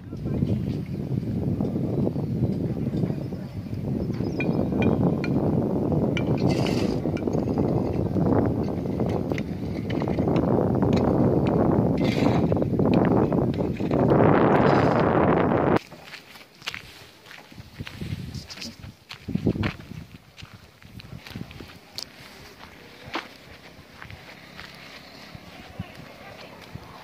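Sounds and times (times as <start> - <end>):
wind buffeting microphone: 0.0 - 15.8, 16.6 - 27.0.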